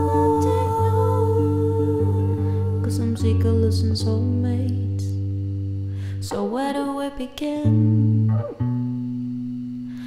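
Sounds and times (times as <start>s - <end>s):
person humming a held note: 0.0s - 4.7s
electric guitar: 0.0s - 7.0s, 7.6s - 10.0s.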